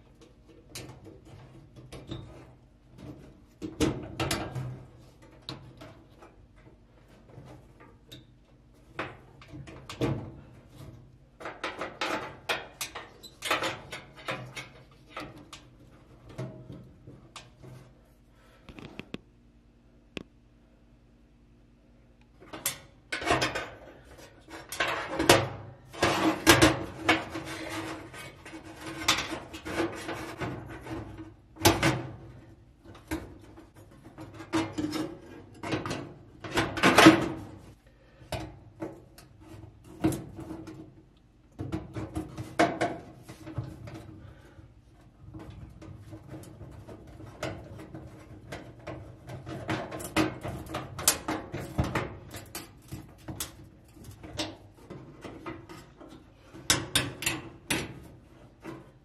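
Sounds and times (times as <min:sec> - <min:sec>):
sheet metal clicks and scrapes: 0:00.1 - 0:18.0, 0:22.4 - 0:37.7, 0:45.2 - 0:59.0.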